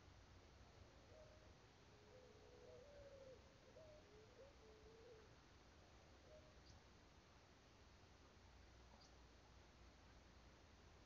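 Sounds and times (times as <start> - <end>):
faint wavering hoot-like call: 1.1 - 5.4, 6.2 - 6.6.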